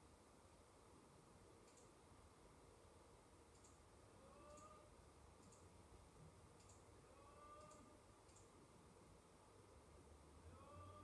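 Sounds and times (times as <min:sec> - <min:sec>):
computer mouse clicks: 0:01.6 - 0:02.0, 0:03.5 - 0:03.8, 0:04.5 - 0:04.8, 0:05.4 - 0:05.7, 0:06.6 - 0:06.9, 0:07.5 - 0:08.6.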